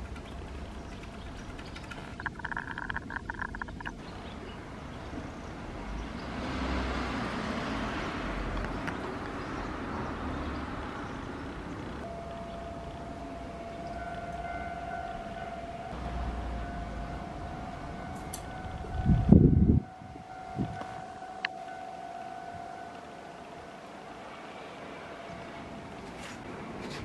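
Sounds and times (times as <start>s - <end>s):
distant siren steady tone: 12.0s - 26.2s.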